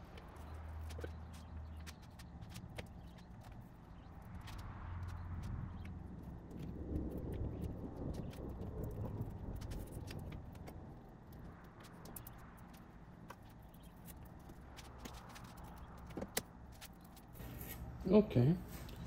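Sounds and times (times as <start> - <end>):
faint rustling and rubbing: 9.4 - 18.0.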